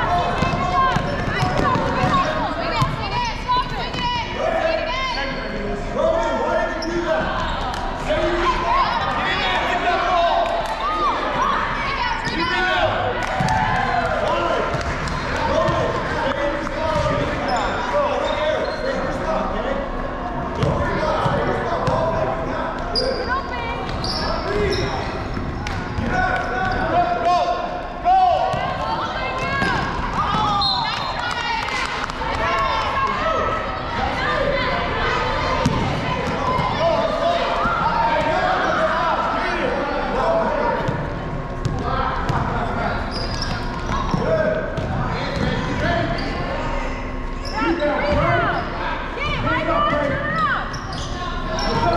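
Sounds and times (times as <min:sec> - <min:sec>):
sneakers squeaking: 0:00.1 - 0:04.3, 0:06.7 - 0:09.4, 0:16.9 - 0:19.2, 0:20.6 - 0:27.0, 0:28.5 - 0:31.4, 0:35.6 - 0:38.5, 0:40.8 - 0:51.9
basketball bouncing: 0:00.3 - 0:03.0, 0:35.6 - 0:36.7, 0:44.8 - 0:45.6.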